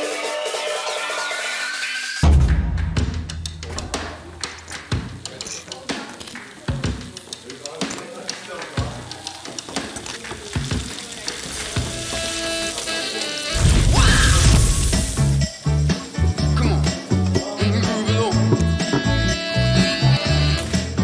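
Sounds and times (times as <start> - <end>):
music: 0.0 - 21.0
frying pan sizzling: 3.5 - 17.4.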